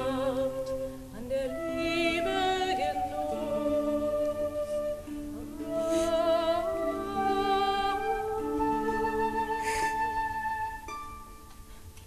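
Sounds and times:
medieval ensemble playing: 1.6s - 12.0s.

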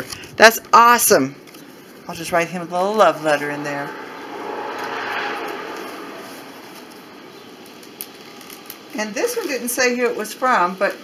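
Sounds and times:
vehicle passing: 2.5s - 8.0s.

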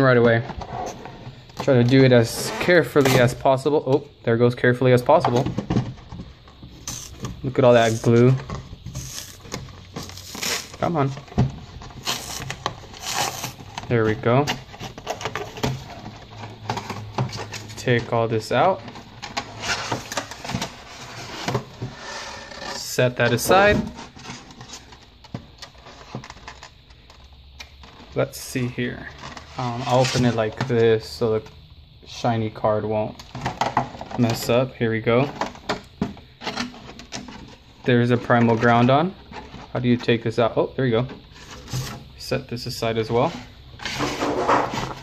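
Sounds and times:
cardboard and paper rustling: 5.0s - 27.2s.

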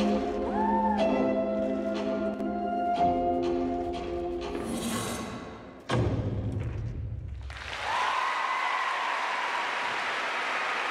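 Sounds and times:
audience applause: 7.4s - 10.9s
high-pitched cheer: 7.6s - 10.9s.

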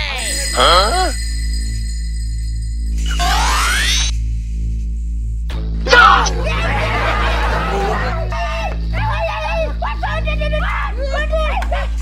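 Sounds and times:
background music: 5.5s - 12.0s.

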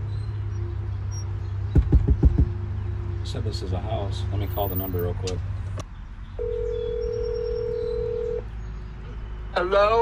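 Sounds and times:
telephone ringback tone: 6.4s - 8.4s.

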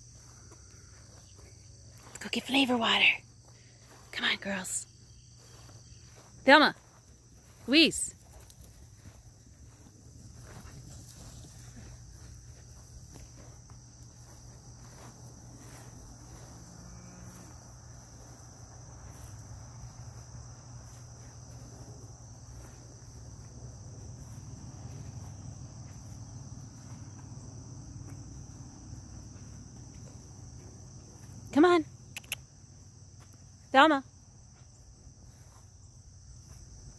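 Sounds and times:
insects trilling: 0.0s - 36.9s.

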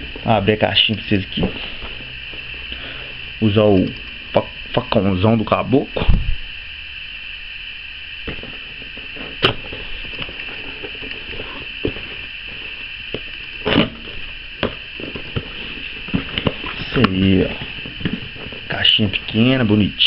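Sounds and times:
steady background hiss: 0.0s - 20.0s.

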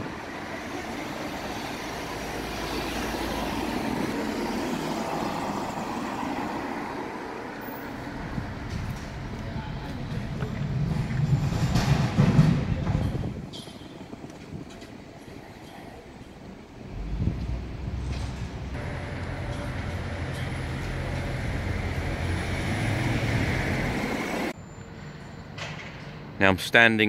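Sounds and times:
vehicle passing with low rumble: 0.0s - 13.4s, 16.7s - 25.2s
traffic engine hum: 0.0s - 25.6s.

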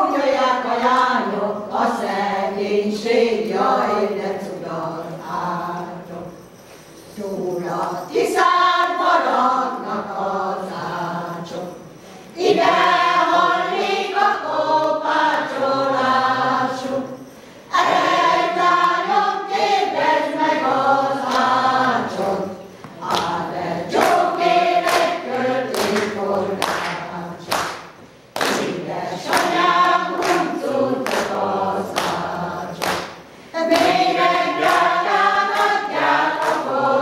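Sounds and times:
women's choir singing unaccompanied: 0.0s - 37.0s.

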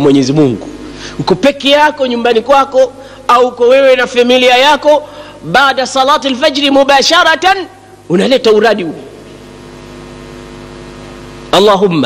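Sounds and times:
steady multi-tone hum: 0.0s - 12.0s.

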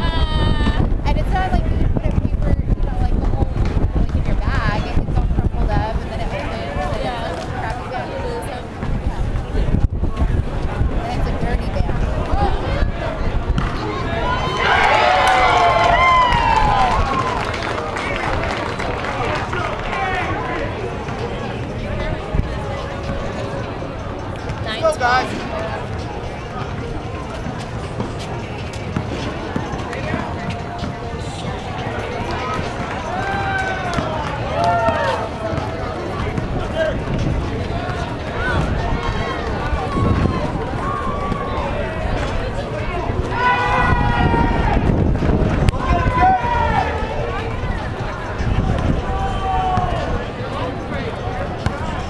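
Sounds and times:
outdoor crowd hubbub: 0.0s - 52.0s
people shouting: 14.0s - 17.4s, 32.9s - 35.3s, 43.3s - 44.9s, 45.8s - 47.2s.

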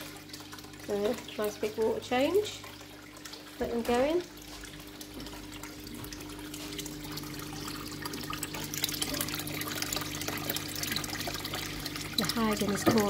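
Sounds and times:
water splashing into fish tank: 0.0s - 13.0s.

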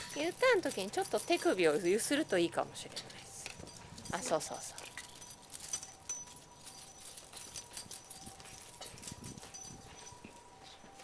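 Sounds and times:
leash clicking and jingling: 0.0s - 11.0s.

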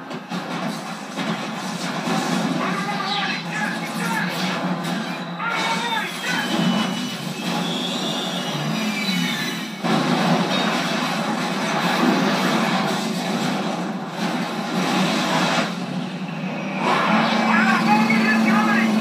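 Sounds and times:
crashing aircraft: 0.0s - 19.0s
explosions: 0.1s - 8.1s, 9.8s - 16.1s.

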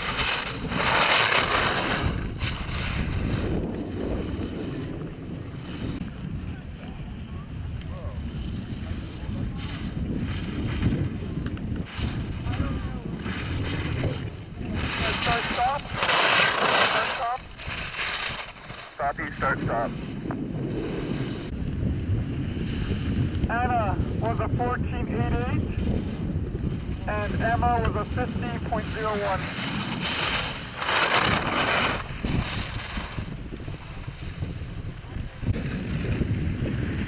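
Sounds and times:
skis scraping across hard snow: 0.0s - 6.0s, 8.3s - 21.6s, 24.6s - 37.0s
wind buffeting microphone: 0.0s - 37.0s.

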